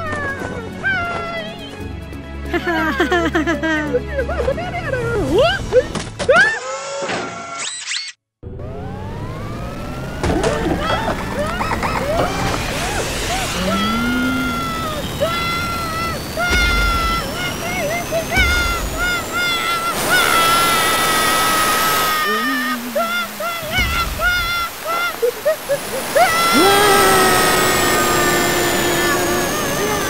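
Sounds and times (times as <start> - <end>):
cartoon music: 8.8 - 30.0
rising whistle-like tone: 10.8 - 30.0
excited vocal exclamations: 13.3 - 25.4, 26.1 - 30.0.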